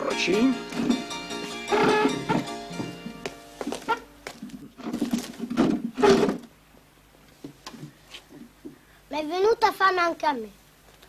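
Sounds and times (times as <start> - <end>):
music: 0.0 - 4.4
wooden chairs scraping on floor: 0.7 - 6.5.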